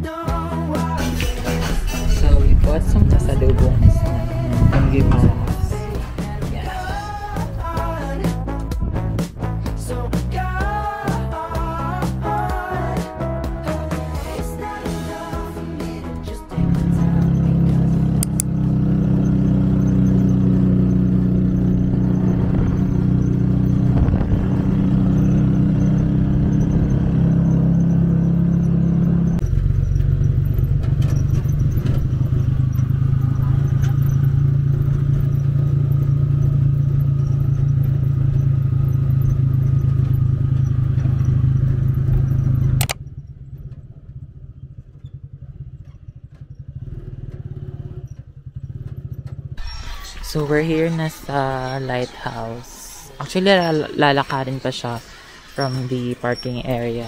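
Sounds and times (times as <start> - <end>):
small motorcycle engine running: 0.9 - 11.9, 15.8 - 57.0.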